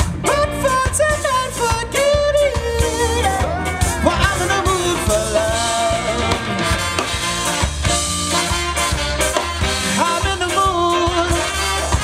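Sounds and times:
upbeat ska band with horns: 0.0s - 12.0s.

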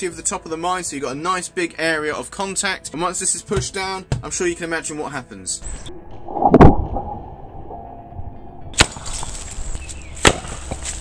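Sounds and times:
sharp crack: 8.8s - 9.6s, 10.2s - 11.0s.

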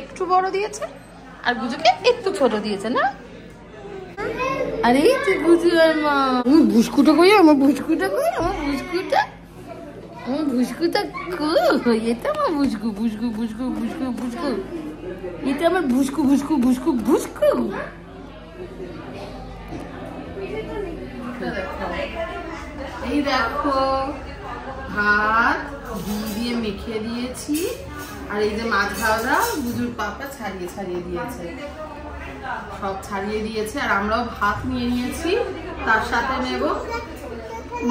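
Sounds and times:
indistinct talking and chatter: 0.0s - 37.9s
young child talking: 4.2s - 5.5s, 36.8s - 37.9s.

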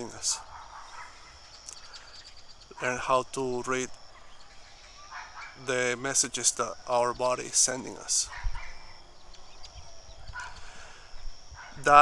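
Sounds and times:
man's voice: 0.0s - 0.5s, 2.7s - 3.9s, 5.6s - 8.3s, 11.8s - 12.0s
faint animal call: 0.0s - 6.0s, 7.8s - 12.0s.

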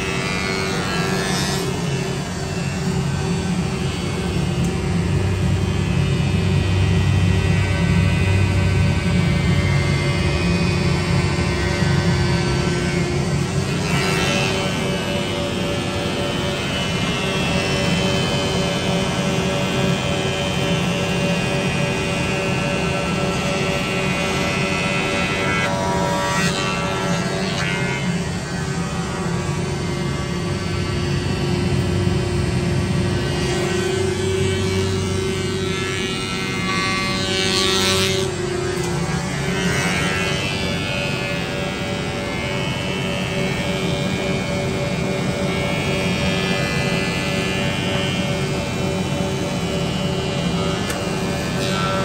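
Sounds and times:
planer machine whining: 0.0s - 52.0s.

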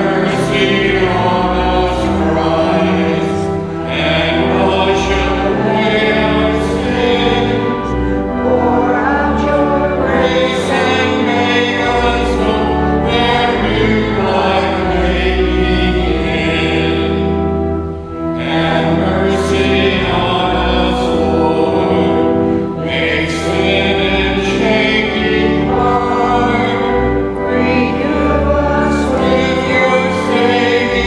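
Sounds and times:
low accompaniment: 0.0s - 31.0s
voices singing a hymn: 0.0s - 31.0s.

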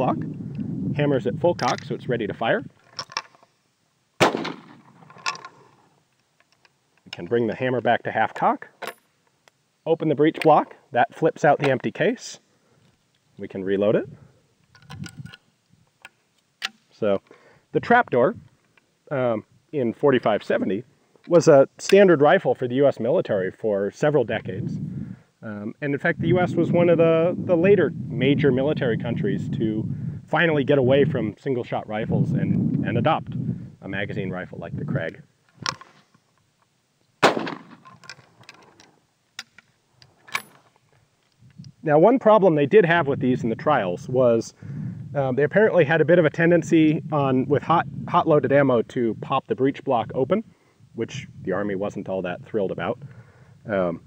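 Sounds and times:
rifle shot with echo: 4.2s - 5.3s, 37.2s - 37.8s
sharp metallic clicks of rifle action: 4.2s - 7.2s, 16.0s - 16.9s, 37.2s - 40.7s.

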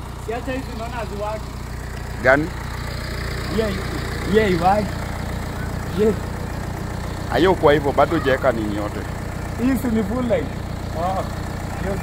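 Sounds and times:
car engine idling: 0.0s - 12.0s
faint voices: 7.3s - 9.1s.

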